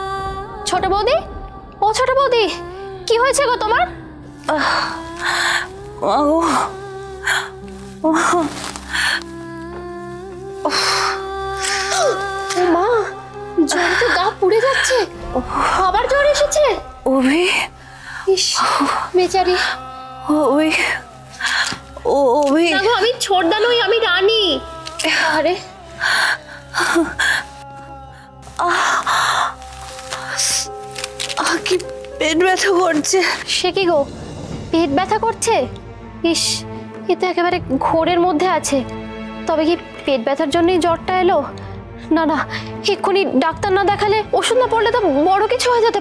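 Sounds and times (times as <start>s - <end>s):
held note background music: 0.0s - 46.0s.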